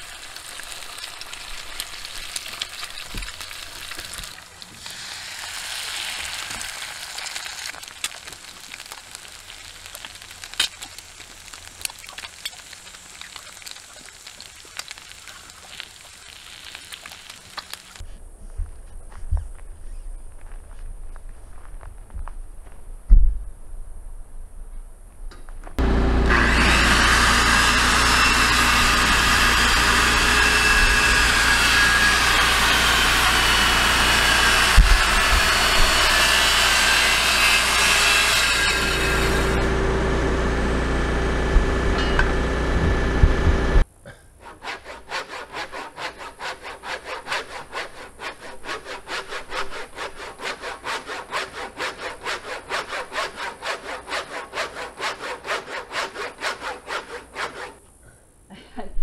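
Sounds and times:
circular saw cutting wood: 25.8s - 43.8s, 44.4s - 57.8s
hand saw strokes through wood: 44.4s - 57.8s.

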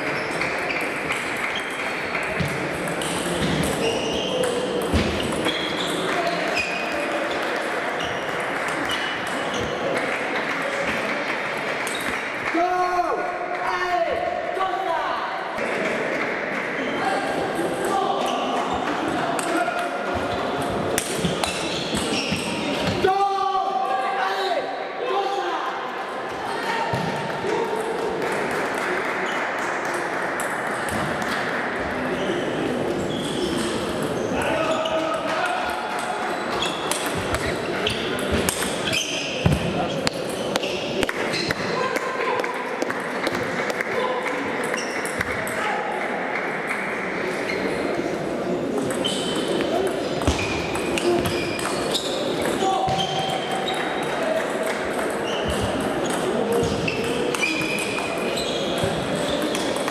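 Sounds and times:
background chatter of voices: 0.0s - 59.9s.

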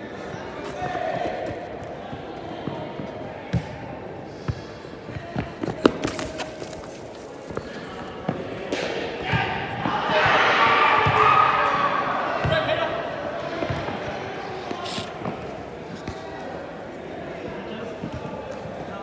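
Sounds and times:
players shouting: 7.6s - 15.7s.

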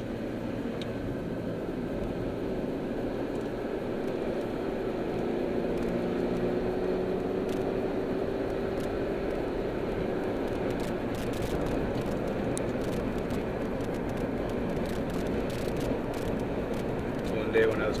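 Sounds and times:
car engine accelerating: 0.0s - 18.0s
road noise inside car: 0.0s - 18.0s.

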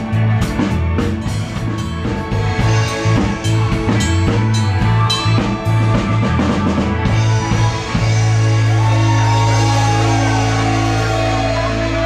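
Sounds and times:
drum and cymbal hits: 0.0s - 12.0s
rock band playing: 0.0s - 12.0s.

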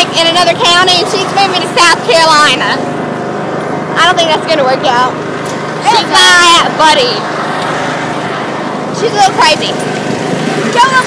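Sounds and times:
riding lawn mower engine: 0.0s - 11.0s.

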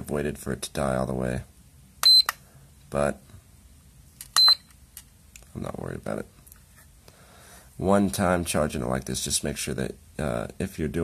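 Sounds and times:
short high-pitched beep: 2.0s - 2.3s, 4.4s - 4.7s.

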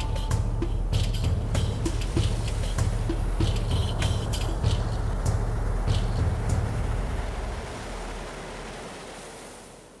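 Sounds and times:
rumbling wash of noise: 0.2s - 10.0s.

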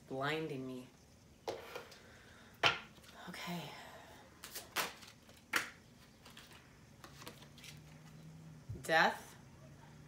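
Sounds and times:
cards shuffling and snapping: 4.4s - 8.2s.

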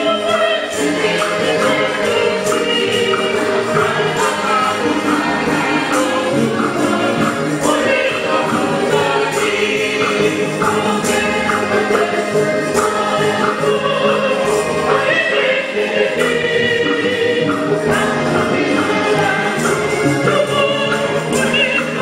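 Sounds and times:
church choir singing a hymn: 0.0s - 22.0s
instrumental accompaniment: 0.0s - 22.0s
regular percussive beat: 0.0s - 22.0s.

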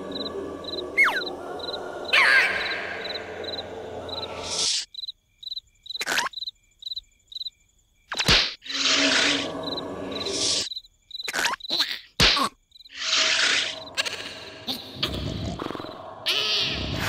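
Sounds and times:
crickets chirping: 0.0s - 11.8s, 12.6s - 17.0s.

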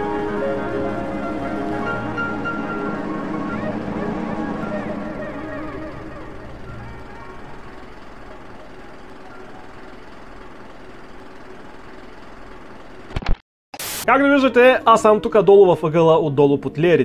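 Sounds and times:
sea surf rushing: 0.0s - 7.9s
music: 0.0s - 9.8s, 14.1s - 17.0s.

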